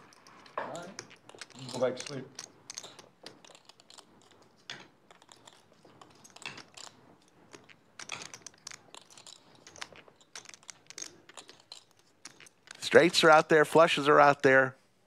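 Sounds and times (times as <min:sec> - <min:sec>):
poker chips clicking: 0:00.0 - 0:14.1.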